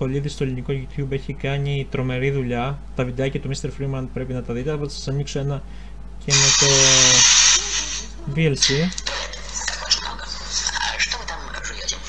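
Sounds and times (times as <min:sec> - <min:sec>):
hissing static from speaker: 0:06.2 - 0:12.0.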